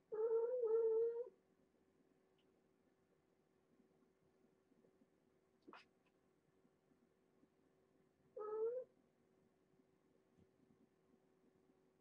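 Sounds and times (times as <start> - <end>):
cat meowing: 8.4 - 8.9.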